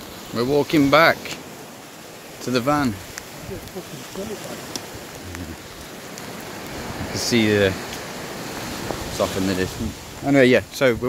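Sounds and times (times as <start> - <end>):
gentle surf: 0.0 - 11.0
wind: 0.0 - 11.0
faint ticks: 3.0 - 6.8.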